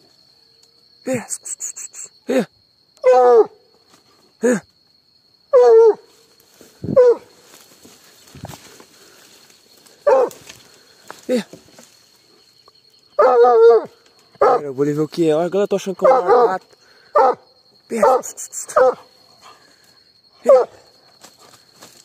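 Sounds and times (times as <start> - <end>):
dog barking: 5.5 - 6.0, 7.0 - 7.3, 10.0 - 10.4, 13.2 - 14.6, 16.0 - 19.1, 20.4 - 20.9.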